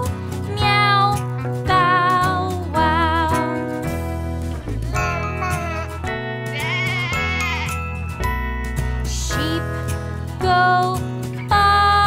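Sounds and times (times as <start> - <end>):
children's song: 0.0 - 3.8, 9.0 - 12.0
sheep-like bleat: 6.4 - 7.8.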